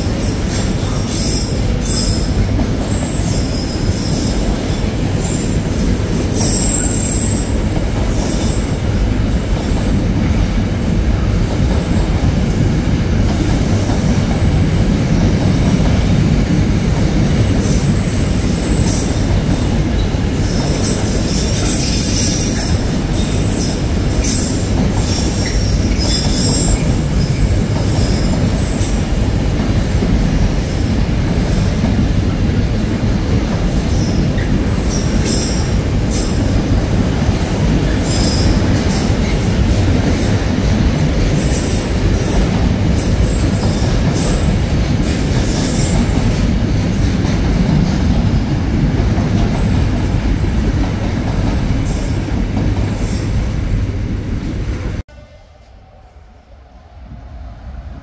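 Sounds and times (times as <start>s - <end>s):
train wheels rumbling on rail: 0.0s - 58.0s.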